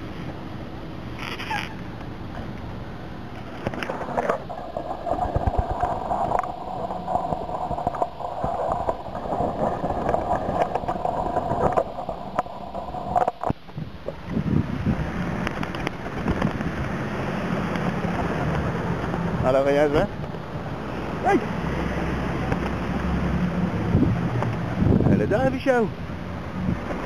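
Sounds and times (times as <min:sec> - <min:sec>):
traffic hum: 0:00.0 - 0:27.0
rustling noise: 0:01.1 - 0:02.7, 0:03.3 - 0:19.4
wind on microphone: 0:01.1 - 0:27.0.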